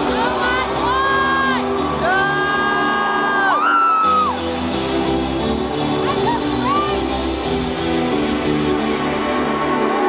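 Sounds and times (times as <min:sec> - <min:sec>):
loud trance dance music: 0:00.0 - 0:10.0
crowd whooping: 0:00.4 - 0:04.4.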